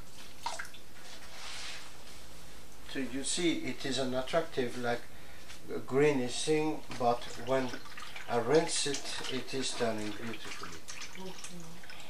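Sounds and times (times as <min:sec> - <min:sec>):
liquid trickling and dripping: 0:00.3 - 0:00.9, 0:06.9 - 0:12.0
liquid splash: 0:06.9 - 0:12.0.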